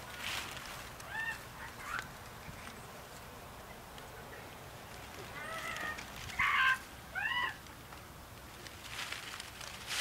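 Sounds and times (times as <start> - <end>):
children making animal noises: 1.0 - 2.2, 5.3 - 7.6.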